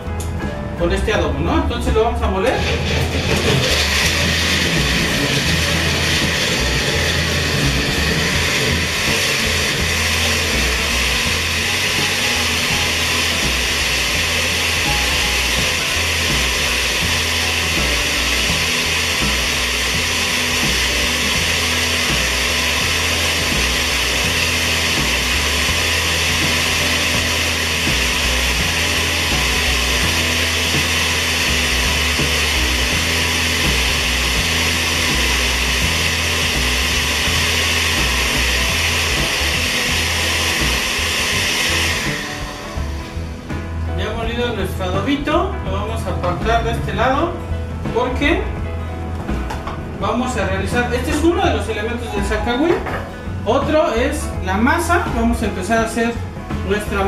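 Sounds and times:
blender running at full speed: 2.4s - 45.2s, 49.4s - 57.0s.

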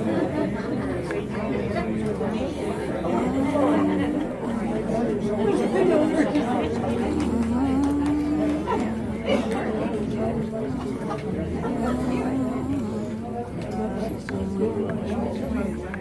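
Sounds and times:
people chattering: 0.0s - 16.0s.

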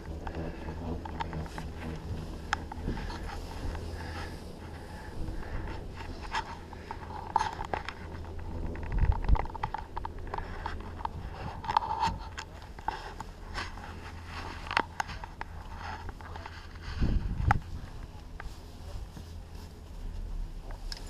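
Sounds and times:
chairlift low hum: 0.0s - 21.0s
camera handling clicks and scraping: 6.0s - 16.6s.

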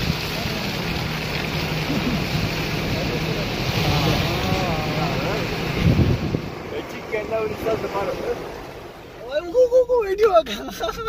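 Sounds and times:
road and engine rumble: 0.0s - 11.0s
faint voices: 1.8s - 9.3s
wind rushing over microphone: 2.2s - 9.1s.

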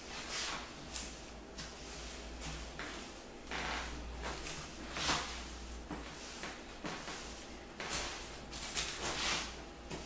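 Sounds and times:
broom sweeping floor: 0.0s - 10.0s.

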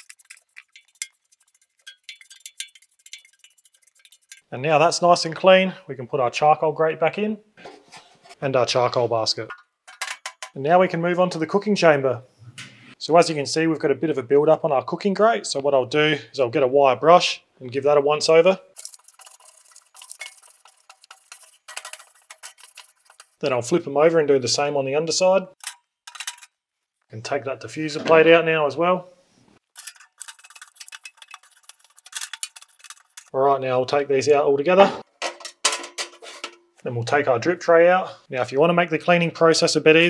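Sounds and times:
wire brush scrubbing metal grate: 0.0s - 4.5s, 18.7s - 23.8s, 29.7s - 33.4s.

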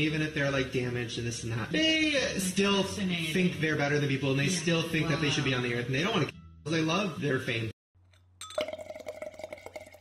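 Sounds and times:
metal straw clinking on glass: 8.1s - 10.0s
wine glass ringing: 8.4s - 10.0s.

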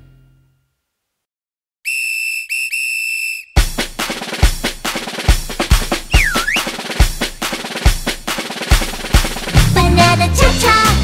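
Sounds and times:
whistle blasts: 1.8s - 3.7s, 6.1s - 6.8s
drum-led cha-cha song: 3.6s - 11.0s.

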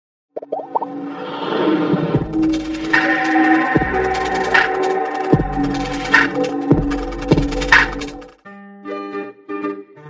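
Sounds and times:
short rising bloops: 0.4s - 1.2s.

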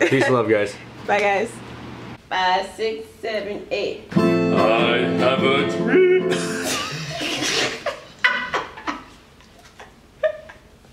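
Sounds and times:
woman laughing: 0.0s - 0.4s, 6.3s - 10.7s.

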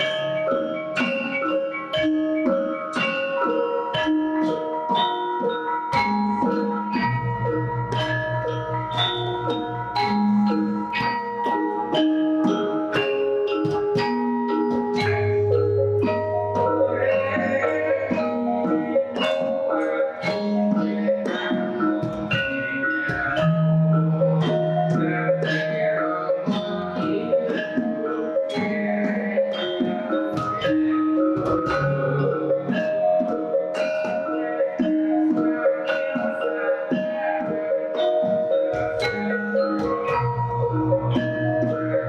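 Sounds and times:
gamelan ensemble playing: 0.0s - 42.0s
metallophones and gong-chimes ringing: 0.0s - 42.0s.

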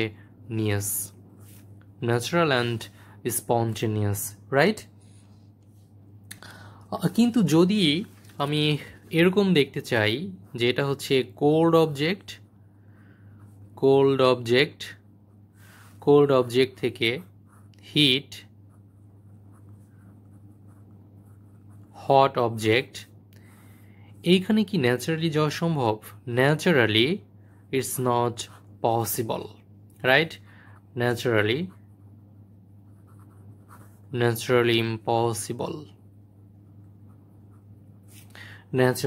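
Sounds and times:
low steady hum: 0.0s - 39.0s
pen scratching on paper: 18.7s - 22.0s, 32.9s - 34.2s.

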